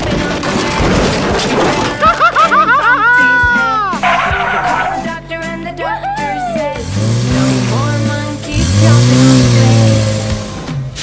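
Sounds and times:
car engine revving: 4.0s - 5.4s, 6.7s - 11.0s.

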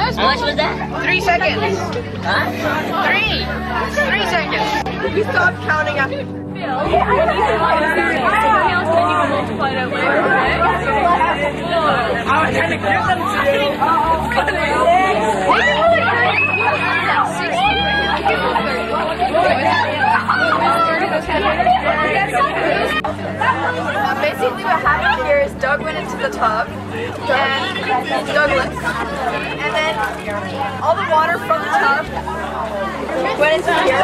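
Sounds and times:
group of people chattering: 0.0s - 34.0s.

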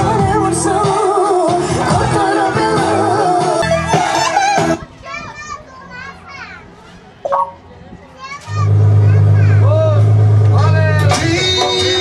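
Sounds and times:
children calling and shouting: 0.9s - 10.2s.

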